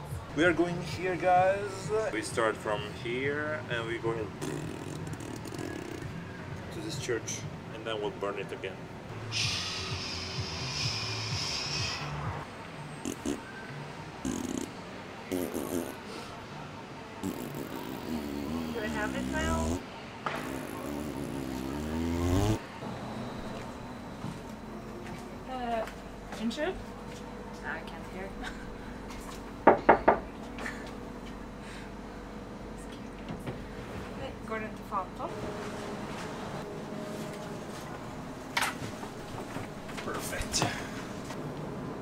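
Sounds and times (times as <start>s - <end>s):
tram interior hum: 8.8s - 13.2s, 22.6s - 42.0s.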